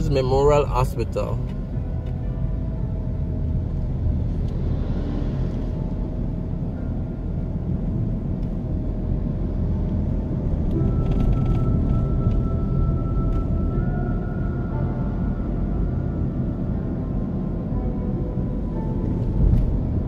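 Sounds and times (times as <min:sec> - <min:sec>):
car driving low rumble: 0:00.0 - 0:20.0
music playing: 0:00.0 - 0:20.0.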